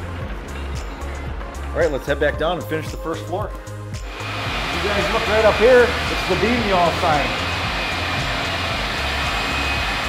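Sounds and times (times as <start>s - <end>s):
background music with bass: 0.0s - 10.0s
steady rushing noise: 4.0s - 10.0s.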